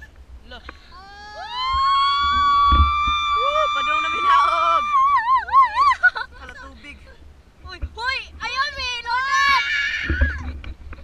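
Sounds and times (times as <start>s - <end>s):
wind rumble on microphone: 0.0s - 11.0s
children shrieking: 1.0s - 6.2s, 9.1s - 10.5s
thump: 2.7s - 2.9s.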